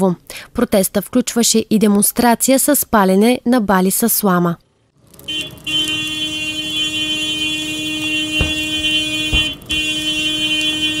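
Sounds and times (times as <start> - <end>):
vehicle horn blasts: 5.3 - 11.0.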